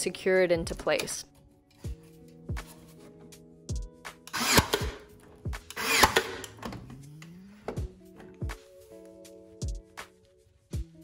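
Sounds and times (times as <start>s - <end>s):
background music with beat: 1.7s - 5.8s, 6.5s - 11.0s
nail gun firing: 4.3s - 5.0s, 5.7s - 6.6s.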